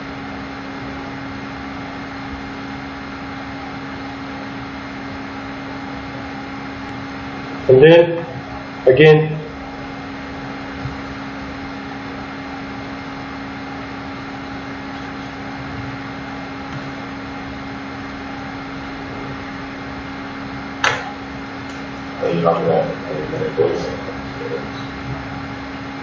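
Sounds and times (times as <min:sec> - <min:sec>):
fan hum and hiss: 0:00.0 - 0:26.0
sharp knock: 0:20.8 - 0:21.1.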